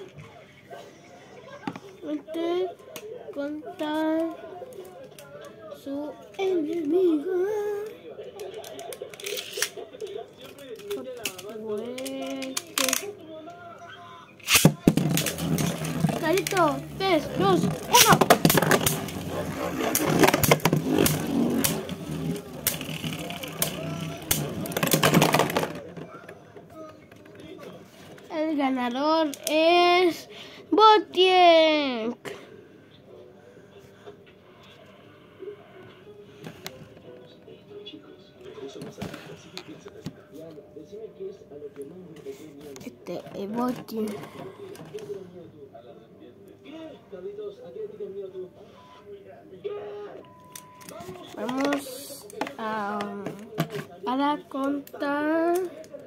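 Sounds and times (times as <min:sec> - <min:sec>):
indistinct voices talking: 0:13.8 - 0:26.4
spinning top bursting apart: 0:14.4 - 0:16.6.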